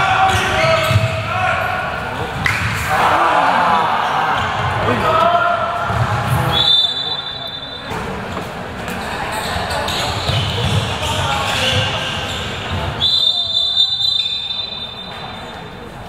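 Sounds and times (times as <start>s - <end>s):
players shouting: 0.0s - 7.0s
referee's whistle blowing: 6.5s - 8.0s, 13.0s - 15.6s.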